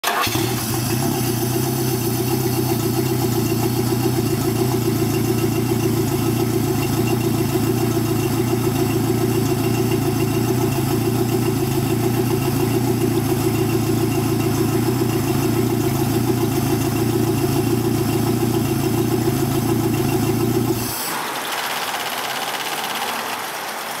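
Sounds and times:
outboard motor idling: 0.0s - 24.0s.

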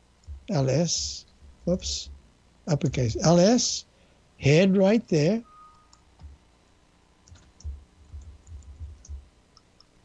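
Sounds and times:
soft low thumps: 0.2s - 2.3s, 6.2s - 6.5s, 7.3s - 9.3s
keyboard and mouse clicks: 7.2s - 9.9s.

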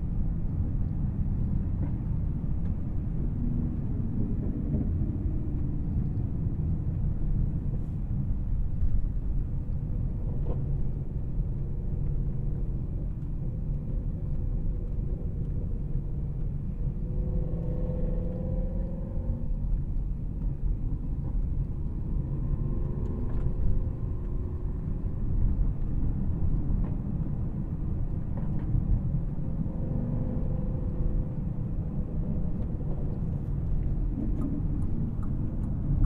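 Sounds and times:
road and tyre noise: 0.0s - 36.0s.

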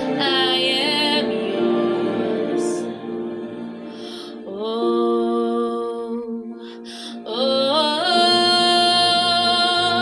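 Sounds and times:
woman singing: 0.0s - 3.1s, 4.2s - 10.0s.

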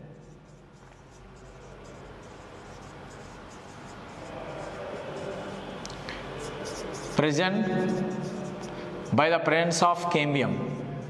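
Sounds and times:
marker squeaking on whiteboard: 0.0s - 9.2s.

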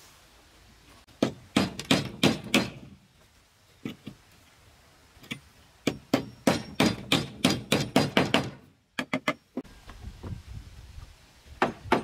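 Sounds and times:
hammer driving wooden peg: 1.2s - 2.8s, 5.8s - 9.4s.

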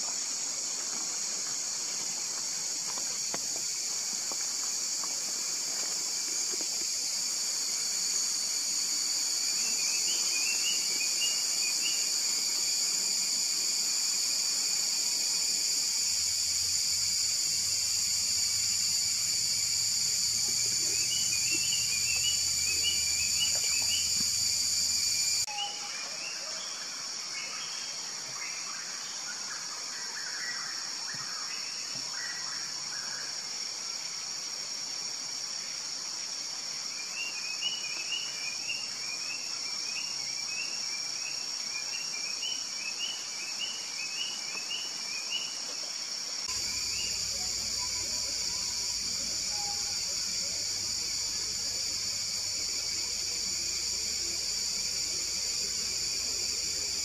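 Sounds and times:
high-pitched insect drone: 0.0s - 33.6s, 34.4s - 57.0s.

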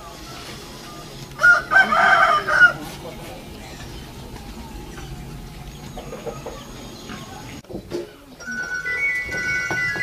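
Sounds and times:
rooster crowing: 1.4s - 2.8s.

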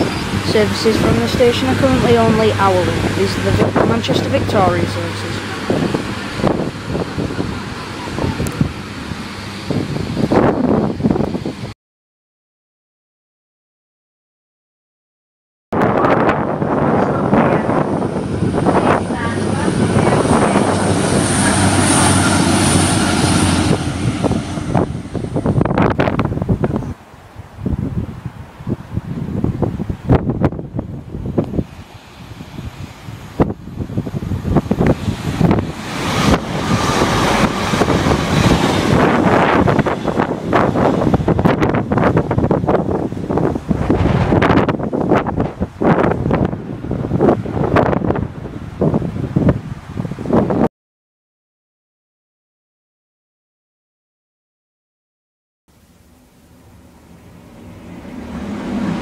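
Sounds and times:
train engine hum and whine: 0.0s - 11.7s, 15.8s - 50.6s, 55.7s - 59.0s
wind buffeting microphone: 0.0s - 11.8s, 15.8s - 50.7s, 57.2s - 59.0s.

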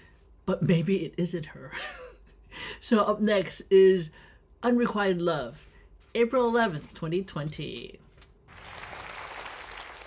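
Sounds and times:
audience applauding: 8.5s - 10.0s.

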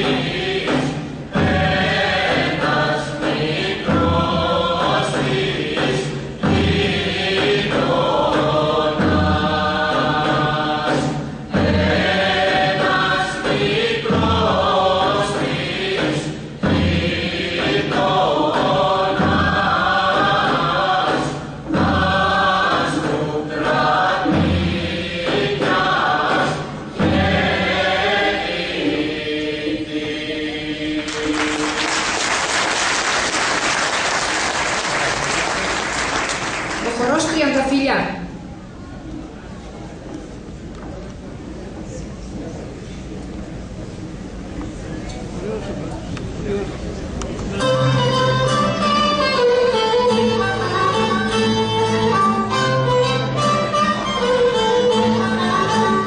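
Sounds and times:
group singing folk song in unison: 0.0s - 34.9s, 47.6s - 56.0s.

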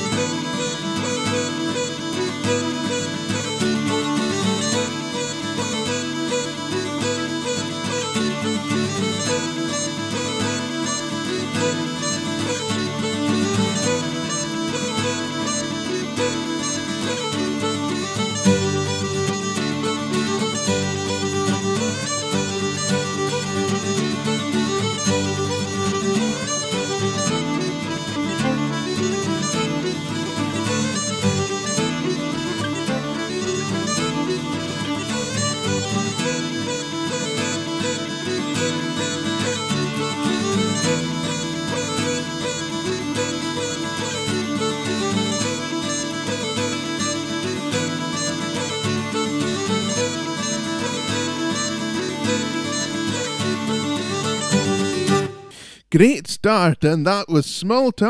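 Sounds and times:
bagpipe tune: 0.0s - 55.8s.

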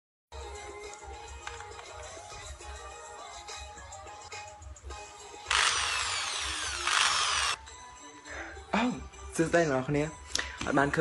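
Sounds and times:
electric drill motor whine: 5.5s - 7.6s.

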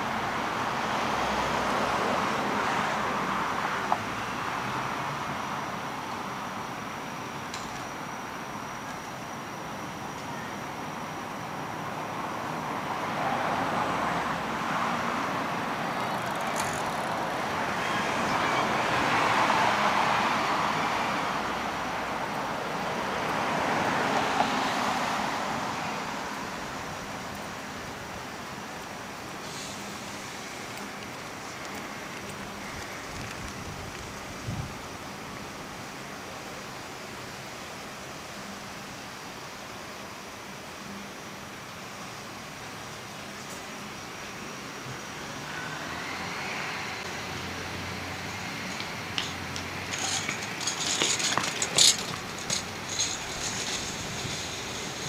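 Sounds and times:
vehicles passing close: 0.0s - 10.0s, 10.8s - 38.9s, 40.4s - 55.0s
distant traffic hum: 0.0s - 55.0s.

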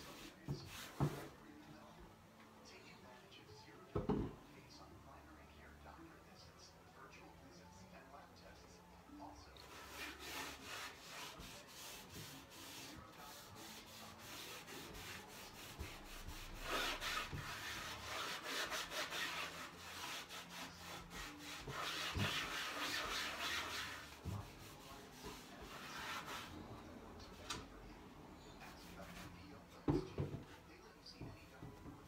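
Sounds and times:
cloth rubbing wax on wooden table: 0.0s - 1.4s, 9.6s - 26.6s, 28.6s - 29.4s.

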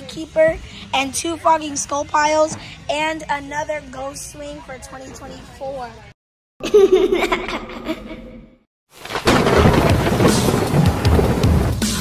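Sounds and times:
music: 0.0s - 6.1s, 9.6s - 12.0s
thunderclap and rumbling: 9.0s - 11.8s.

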